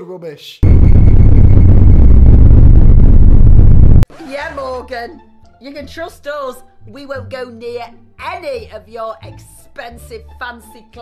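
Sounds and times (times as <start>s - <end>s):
loud distorted bass-heavy noise blast: 0.6s - 4.0s.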